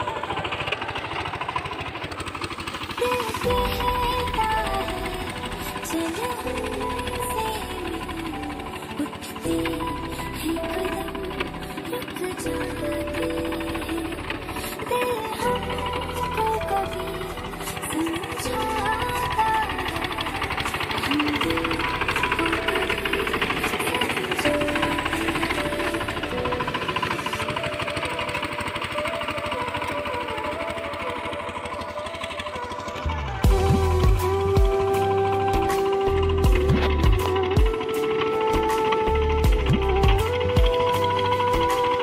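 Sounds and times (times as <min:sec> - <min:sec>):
background music: 0:00.0 - 0:42.0
diesel engine chugging: 0:00.0 - 0:42.0.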